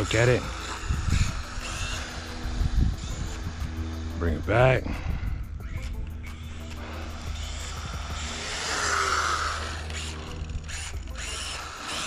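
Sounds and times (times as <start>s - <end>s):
electric motor whine: 0.0s - 12.0s.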